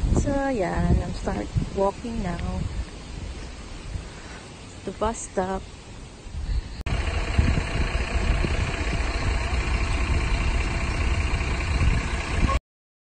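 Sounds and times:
bus diesel engine idling: 6.9 - 12.6.

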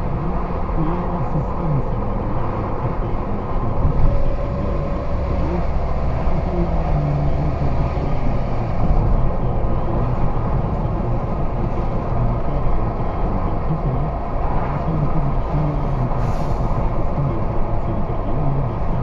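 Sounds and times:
car engine and tyre rumble: 0.0 - 19.0.

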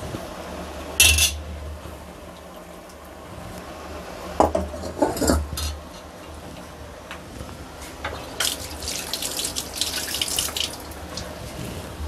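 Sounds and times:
low steady hum: 0.0 - 12.0
curry bubbling and spluttering: 8.2 - 11.4.

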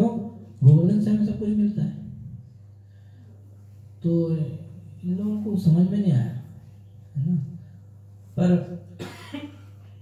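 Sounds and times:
low steady hum: 0.0 - 10.0
man coughing: 9.0 - 9.8.

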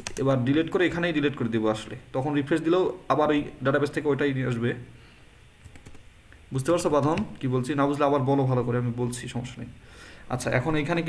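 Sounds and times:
computer keyboard typing: 0.0 - 0.4, 5.6 - 6.0.

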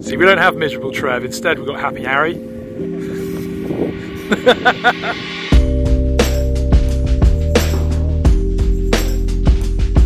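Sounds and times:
sustained low background music: 0.0 - 10.0
man laughing: 4.2 - 5.5.

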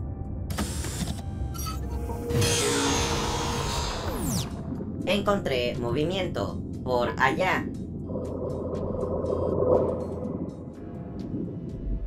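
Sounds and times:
background music: 0.0 - 12.0
low rumble: 3.2 - 12.0.

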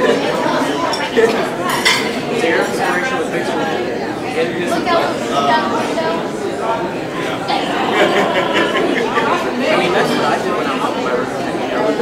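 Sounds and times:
crowd chatter: 0.0 - 12.0
cutlery and dishes clinking: 0.9 - 3.0.

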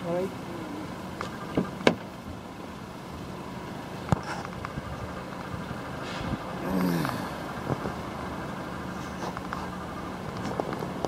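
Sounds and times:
low hum: 2.2 - 11.0.

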